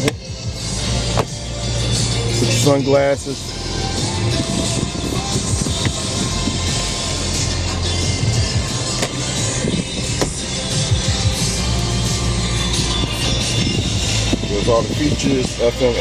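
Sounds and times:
sun visor clicks: 0.0 - 0.2, 1.1 - 1.4, 5.6 - 6.1, 8.9 - 10.5
music from car radio: 0.0 - 16.0.

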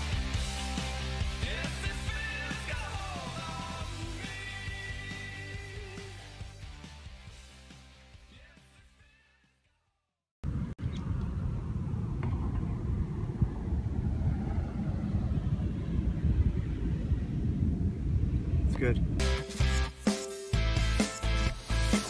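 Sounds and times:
guitar rock music: 0.0 - 8.8, 19.2 - 22.0
low rumble with buffeting: 10.4 - 19.2.

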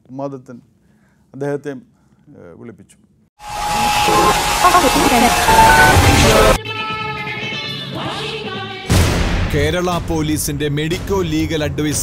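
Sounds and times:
dramatic noisy sound effect: 3.4 - 6.6
steady high tone: 3.4 - 6.6
music: 3.4 - 12.0.

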